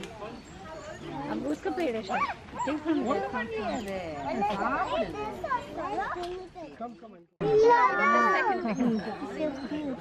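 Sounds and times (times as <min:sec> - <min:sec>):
voices of children and adults: 0:00.0 - 0:10.0.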